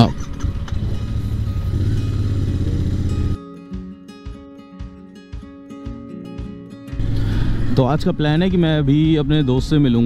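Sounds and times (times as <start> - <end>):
motorcycle engine at low revs: 0.0 - 3.4.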